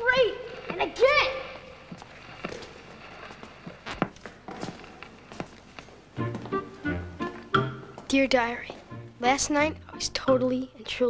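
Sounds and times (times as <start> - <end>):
footsteps on wooden stage: 1.6 - 9.0.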